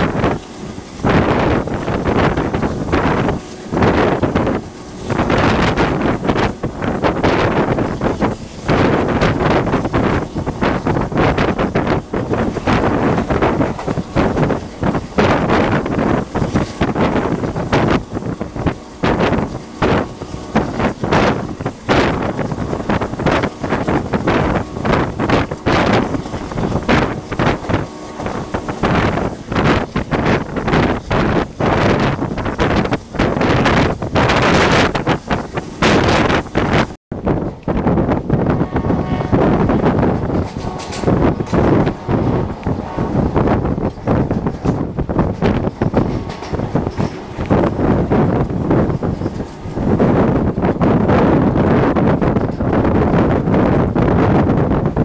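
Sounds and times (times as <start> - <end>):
oncoming train passing: 0.0 - 55.0
train running on rails: 0.0 - 55.0
wind buffeting microphone: 0.0 - 55.0.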